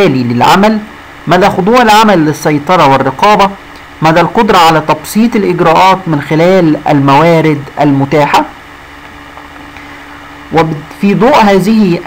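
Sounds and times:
man speaking: 0.0 - 8.6, 10.5 - 12.0
faint background hum: 0.0 - 12.0.

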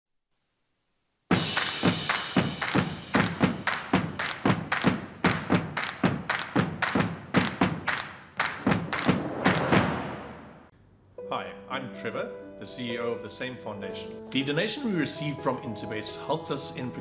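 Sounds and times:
music: 1.3 - 9.1, 11.2 - 17.0
rhythmic galloping thuds: 1.3 - 10.4.

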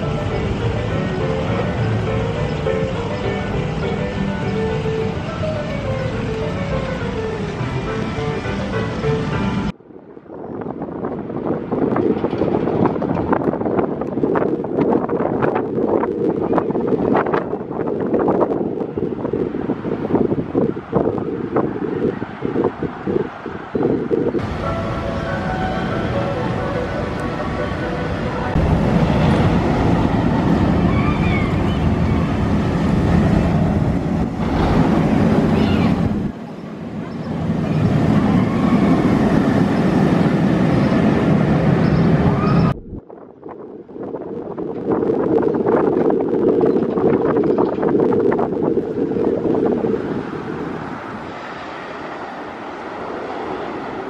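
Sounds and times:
roller coaster rumbling on track: 0.0 - 54.0
wind buffeting microphone: 0.0 - 54.0.

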